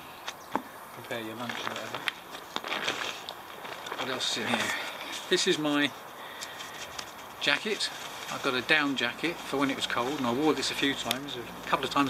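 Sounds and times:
backpack fabric rustling: 1.3s - 11.9s.

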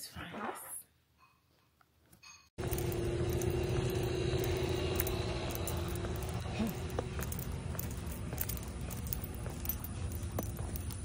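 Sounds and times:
faint steady hum: 2.6s - 11.0s
road traffic rumble: 2.6s - 11.0s.

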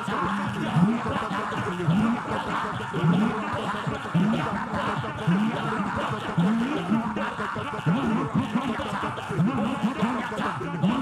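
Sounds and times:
crowd praying aloud: 0.0s - 9.3s.

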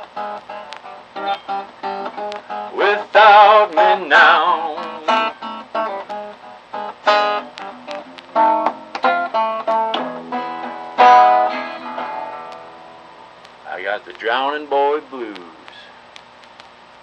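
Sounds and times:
acoustic guitar blues lick: 0.0s - 15.8s
person singing: 2.6s - 5.4s.

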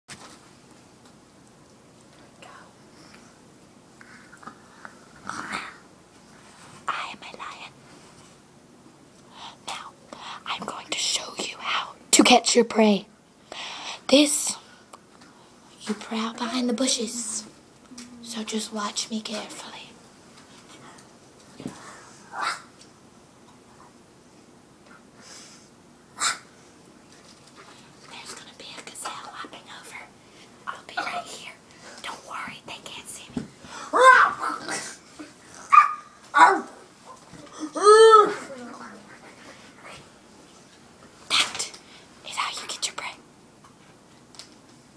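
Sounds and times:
person whispering: 6.9s - 7.7s, 30.7s - 33.3s, 42.3s - 43.2s
high-pitched vocal cry: 33.9s - 34.8s, 37.4s - 39.1s.

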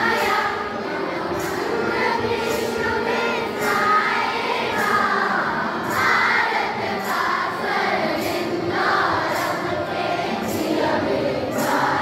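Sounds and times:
group singing in unison: 0.0s - 12.0s.

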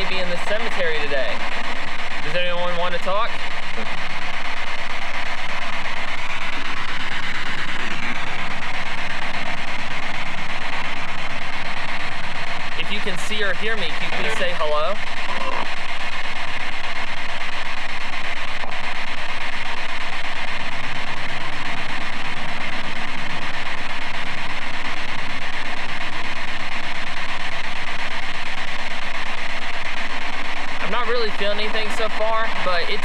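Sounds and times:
chopped broadcast voices: 0.0s - 26.6s, 27.2s - 33.0s
radio static: 0.0s - 33.0s.

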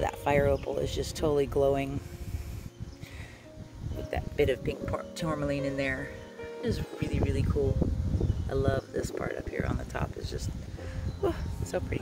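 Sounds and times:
faint background music: 0.0s - 12.0s
wind rumble on microphone: 0.0s - 12.0s.

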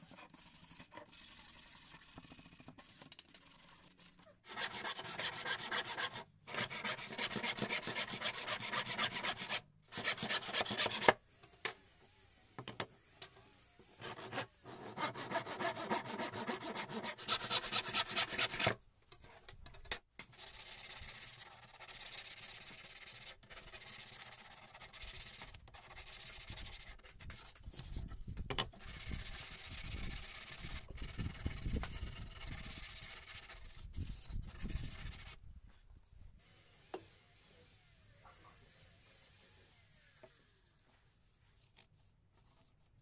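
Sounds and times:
hand sanding wood: 0.0s - 11.2s, 14.0s - 18.8s, 20.4s - 28.1s, 28.8s - 35.4s
hand saw cutting wood: 4.4s - 11.2s, 14.0s - 18.8s.

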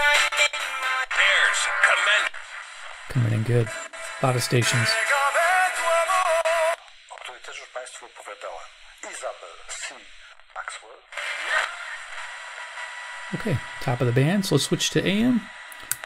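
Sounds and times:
radio singing with music: 0.0s - 16.0s
radio static noise: 1.0s - 15.8s
radio talk: 1.4s - 5.2s, 6.7s - 12.5s, 13.2s - 15.6s.

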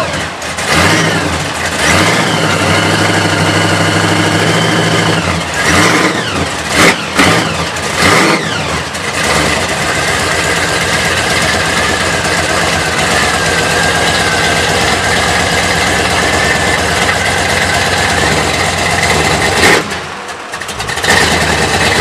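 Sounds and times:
car engine revving and idling: 0.0s - 22.0s
high supercharger whine: 0.0s - 22.0s.

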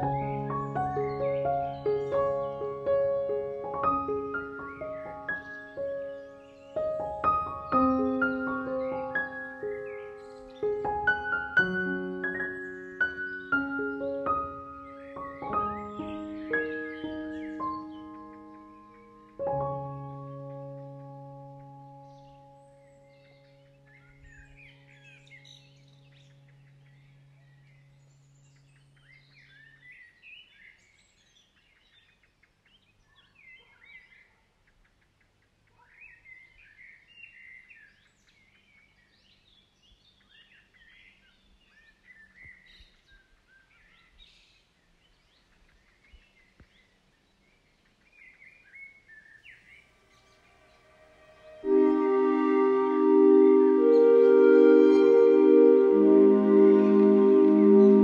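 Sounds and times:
held piano-like chord: 0.0s - 29.3s, 50.0s - 58.0s
small birds chirping: 0.0s - 52.1s
low background hiss: 0.0s - 58.0s.

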